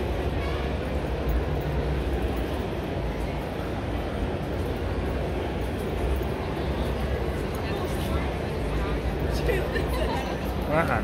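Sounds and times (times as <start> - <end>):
exhibition hall background noise: 0.0 - 11.0.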